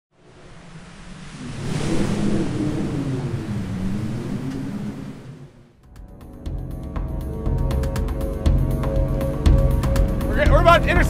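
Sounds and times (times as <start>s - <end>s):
rushing rumble with bending tones: 0.1s - 11.0s.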